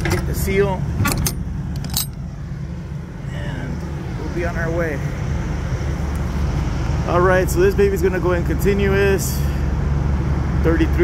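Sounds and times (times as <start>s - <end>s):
low engine hum: 0.0s - 11.0s
metallic latch clinks: 1.0s - 2.2s.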